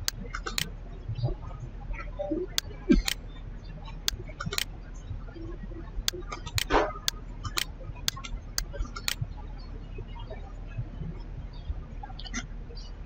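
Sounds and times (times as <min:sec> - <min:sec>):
computer mouse clicking: 0:00.0 - 0:00.7.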